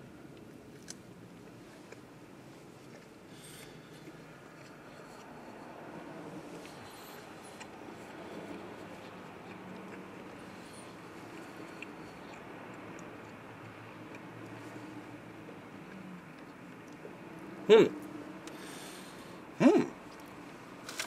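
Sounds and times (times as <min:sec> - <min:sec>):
quiet chewing: 0:00.0 - 0:21.0.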